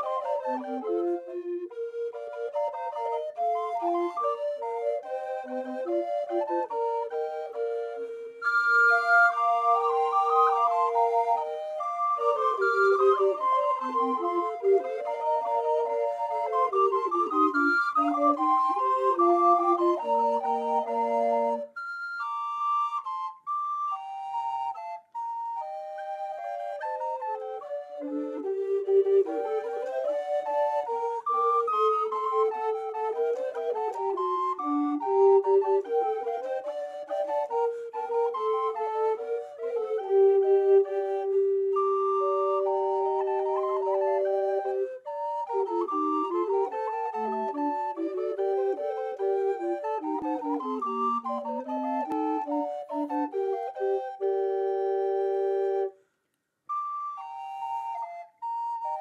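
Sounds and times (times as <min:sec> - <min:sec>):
recorder ensemble playing: 0:00.0 - 0:56.0, 0:56.7 - 0:59.0.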